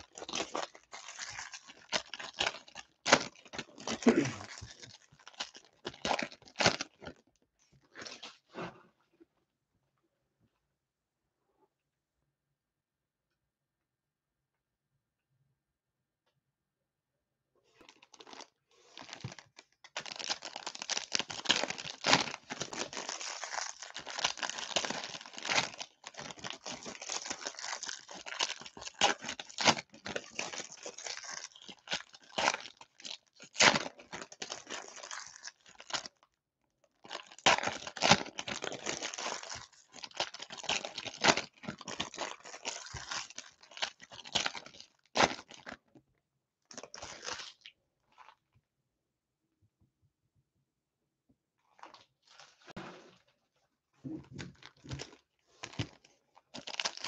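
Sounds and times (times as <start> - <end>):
plastic wrappers tearing and crinkling: 0.0 - 7.2, 17.8 - 36.2, 37.0 - 45.8, 46.7 - 47.7, 54.3 - 57.0.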